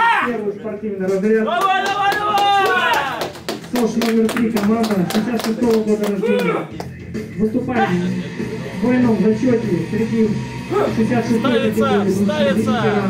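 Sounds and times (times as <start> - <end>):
music: 0.0 - 13.0
hand claps: 1.5 - 7.0
voice over music: 5.9 - 13.0.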